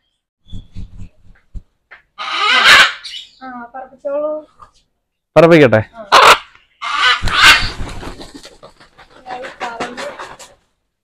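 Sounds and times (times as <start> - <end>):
macaw screeching: 2.2 - 3.4, 6.0 - 7.7
wing beats: 6.2 - 10.6.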